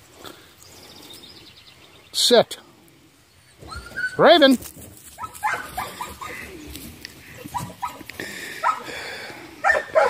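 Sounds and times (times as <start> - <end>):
dog yipping and whining: 3.6 - 4.2, 5.2 - 6.4.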